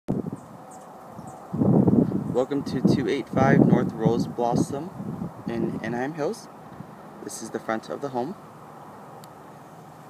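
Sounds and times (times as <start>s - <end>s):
wind rumbling on microphone: 0.1s - 10.0s
person speaking: 7.2s - 8.4s.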